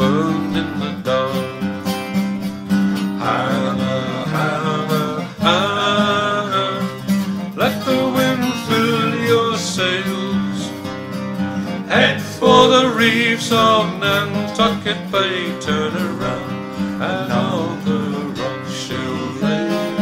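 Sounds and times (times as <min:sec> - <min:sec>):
picked acoustic guitar: 0:00.0 - 0:20.0
held melodic line: 0:00.2 - 0:20.0.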